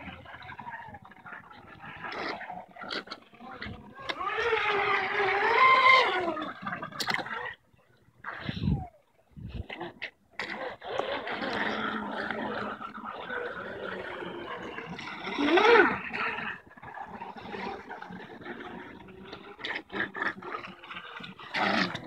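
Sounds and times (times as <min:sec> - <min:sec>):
electric boat motor whining: 0:03.5 - 0:06.5, 0:14.2 - 0:16.7.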